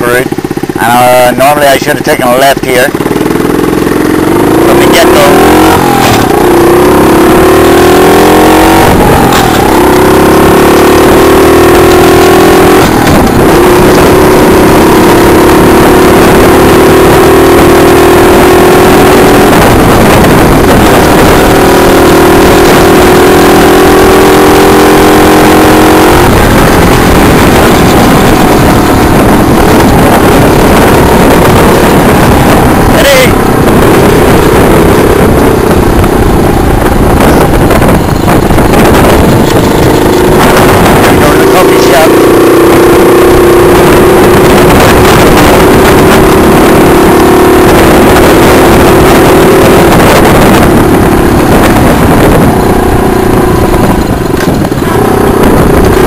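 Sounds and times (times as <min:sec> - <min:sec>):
small engine running: 0:00.0 - 0:42.5
rushing noise: 0:03.0 - 0:56.0.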